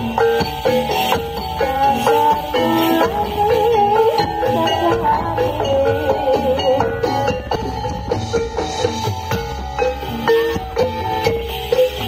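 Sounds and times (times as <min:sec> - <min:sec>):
drum and percussion strokes: 0:00.0 - 0:12.0.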